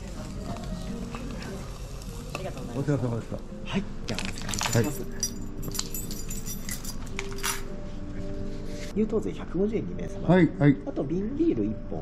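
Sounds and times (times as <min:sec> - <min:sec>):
fish sizzling on a grill: 0:00.0 - 0:03.4.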